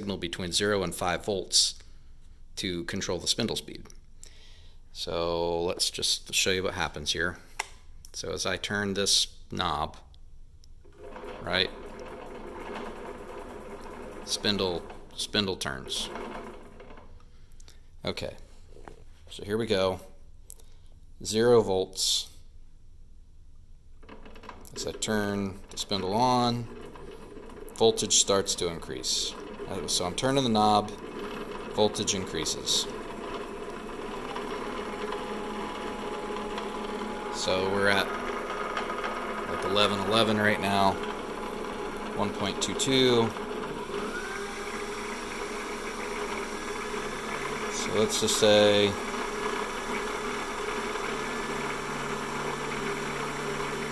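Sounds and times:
milling machine motor running: 11.1s - 15.0s, 25.8s - 53.9s.

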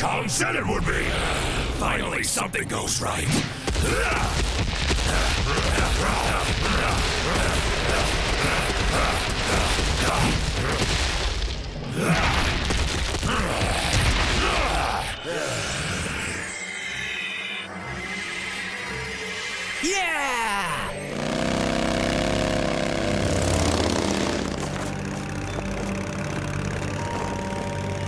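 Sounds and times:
high shimmering tone: 15.4s - 21.4s.

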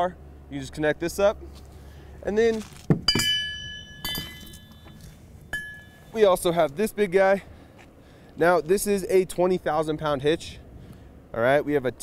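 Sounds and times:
metal hitch mounts clanking: 2.4s - 6.9s.

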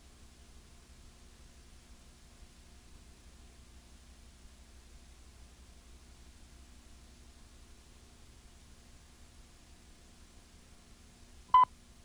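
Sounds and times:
faint hum and hiss: 0.0s - 12.0s.

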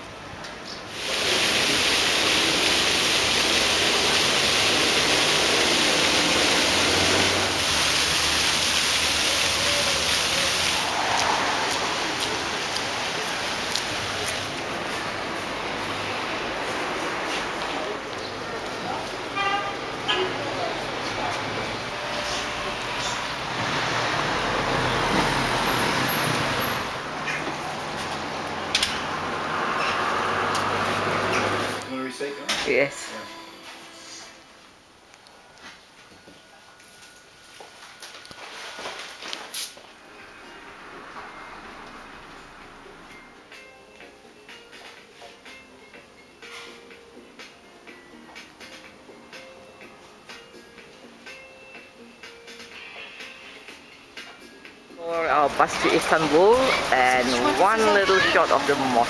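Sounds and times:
fountain water splashing: 0.9s - 15.2s, 55.2s - 59.0s
vehicle passing close by: 3.3s - 31.9s, 40.0s - 43.1s.

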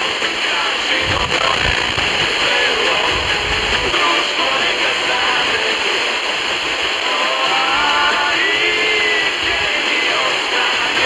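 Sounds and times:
faint radio music: 0.0s - 11.0s
static hiss: 0.0s - 11.0s.

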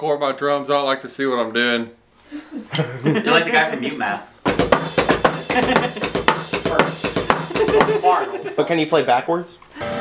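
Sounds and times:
pitched backing part: 2.7s - 10.0s
drum kit playing: 4.4s - 9.0s.

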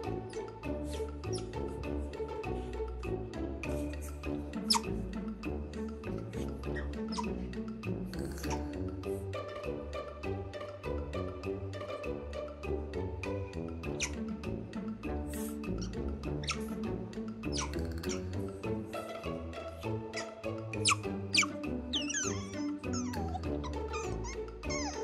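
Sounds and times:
otter squeaks and chirps: 0.0s - 1.8s, 3.6s - 5.0s, 6.4s - 7.5s, 8.3s - 8.8s, 13.8s - 14.3s, 15.3s - 18.7s, 20.0s - 25.0s
background music: 0.0s - 25.0s.

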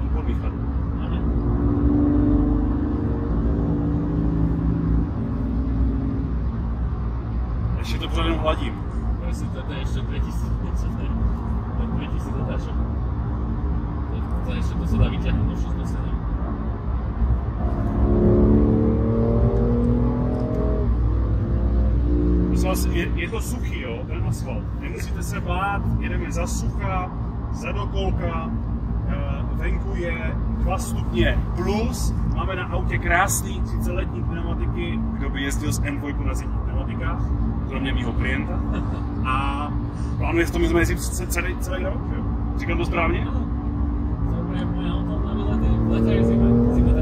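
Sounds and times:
car engine accelerating: 0.0s - 24.7s, 25.8s - 47.0s
road rumble: 0.0s - 47.0s.

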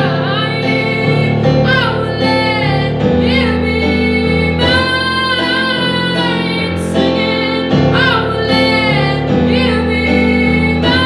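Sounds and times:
sustained piano chords: 0.0s - 11.0s
woman singing: 0.0s - 11.0s.

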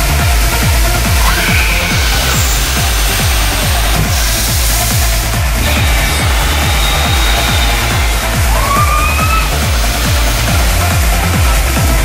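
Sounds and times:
electronic dance music: 0.0s - 12.0s
pounding kick drum beat: 0.0s - 12.0s.

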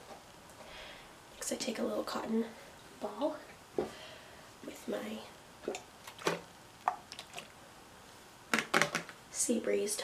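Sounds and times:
plastic bottle clicks and crackles: 8.5s - 9.2s.

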